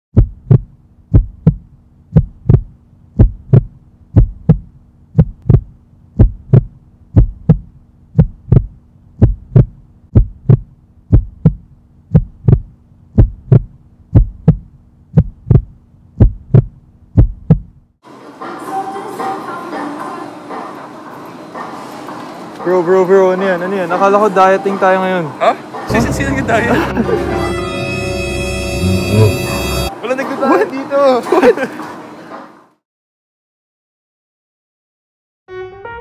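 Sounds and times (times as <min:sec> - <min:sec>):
heartbeat thumps: 0:00.1 - 0:17.8.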